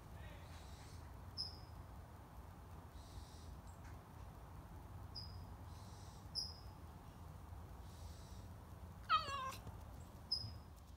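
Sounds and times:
cat meowing: 9.1s - 9.6s.

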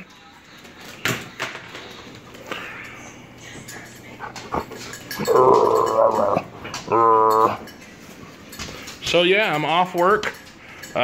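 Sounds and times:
dog grumbling: 4.3s - 7.7s.

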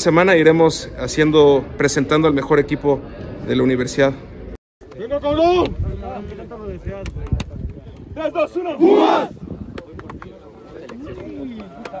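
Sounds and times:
voices chattering: 1.6s - 12.0s
team shouting a chant: 8.7s - 9.4s.

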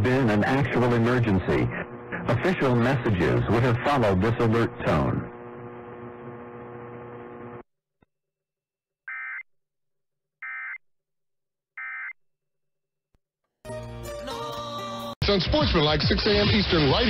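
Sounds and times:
steady buzzing hum: 0.0s - 7.6s.

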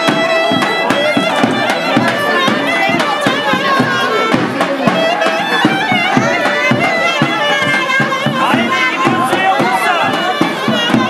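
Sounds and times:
clarinet folk melody: 0.0s - 11.0s
steady drum beat: 0.0s - 11.0s.

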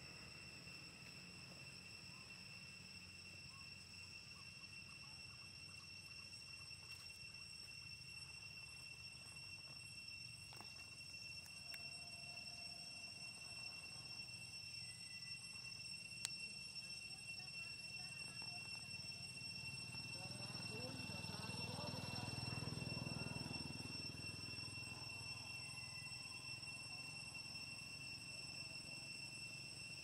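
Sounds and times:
high-pitched drone: 10.5s - 30.0s
indistinct chatter: 16.8s - 27.2s.

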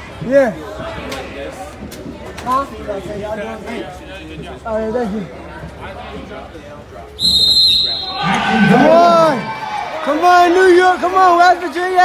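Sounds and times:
low crowd chatter: 0.0s - 12.0s
referee's whistle blast: 7.2s - 8.4s.

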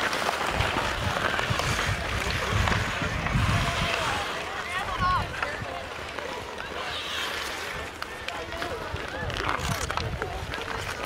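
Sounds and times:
hockey sticks clicking on puck: 0.0s - 11.0s
skate blades scraping ice: 0.0s - 11.0s
spectators chattering: 0.0s - 11.0s
wind rumble on microphone: 0.5s - 5.9s, 8.7s - 11.0s.

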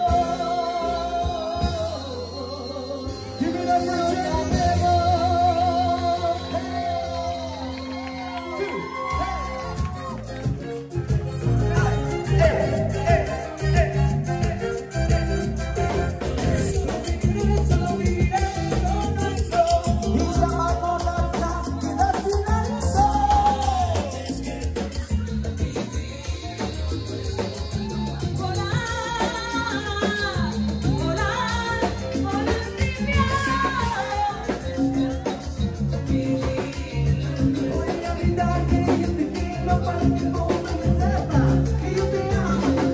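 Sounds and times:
live band playing salsa music: 0.0s - 42.9s
person singing: 0.0s - 42.9s.

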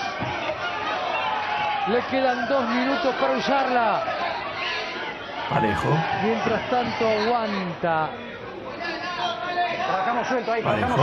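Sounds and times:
background chatter: 2.2s - 11.0s
men talking: 5.5s - 7.3s, 10.0s - 11.0s.

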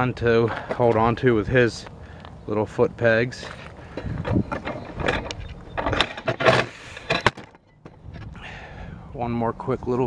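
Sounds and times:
camera handling knocks and rustles: 3.9s - 8.3s.

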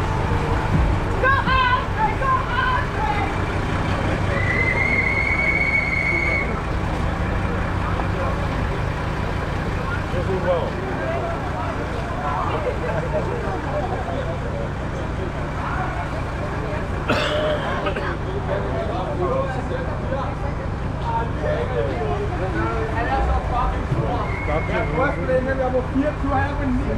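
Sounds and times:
people chattering: 0.0s - 26.9s
truck engine idling: 0.0s - 26.9s.

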